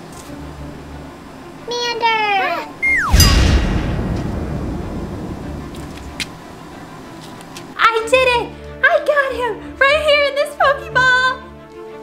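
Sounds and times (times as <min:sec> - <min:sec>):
falling whistle: 0:02.8 - 0:03.4
flame whoosh with deep rumble: 0:03.1 - 0:06.5.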